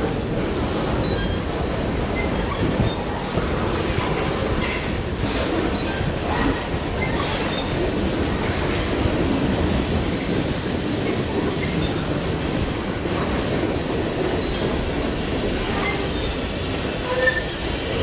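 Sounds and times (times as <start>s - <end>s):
train wheels rolling over rails: 0.0s - 18.0s.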